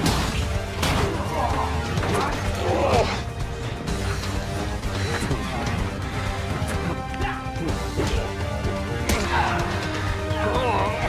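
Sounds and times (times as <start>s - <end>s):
fight scene music: 0.0s - 11.0s.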